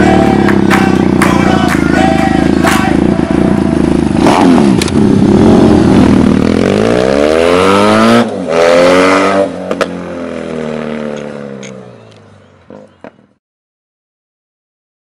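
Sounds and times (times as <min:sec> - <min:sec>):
motorcycle engine revving: 0:00.0 - 0:12.0.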